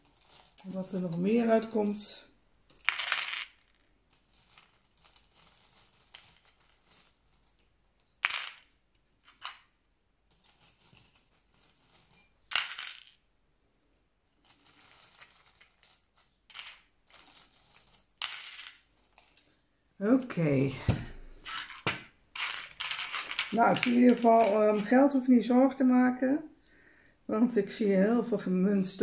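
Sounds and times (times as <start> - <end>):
metal charms and coins clinking: 0.0 - 3.5, 4.1 - 7.7, 14.4 - 19.5, 21.4 - 25.2.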